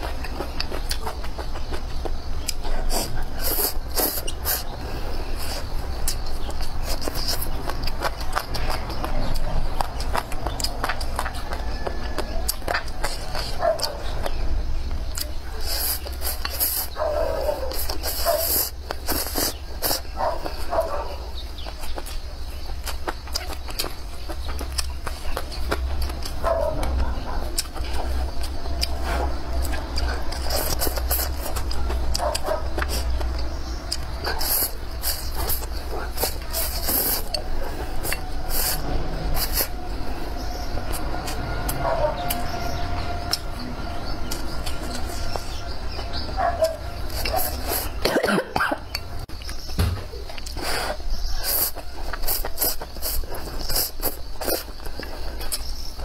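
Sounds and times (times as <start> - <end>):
person chewing and slurping: 0.0 - 17.0, 17.6 - 20.7, 21.6 - 49.6, 50.3 - 56.0.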